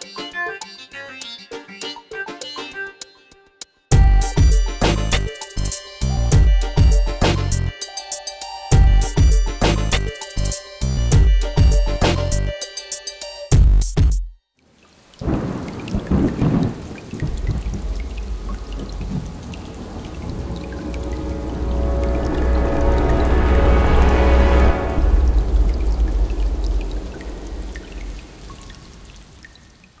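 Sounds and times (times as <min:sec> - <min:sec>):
low thunder-like rumble: 0:15.2 - 0:29.4
sustained tones: 0:17.9 - 0:29.2.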